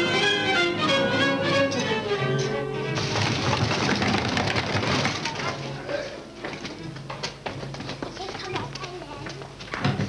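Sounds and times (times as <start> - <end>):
orchestral music with violins: 0.0 - 3.0.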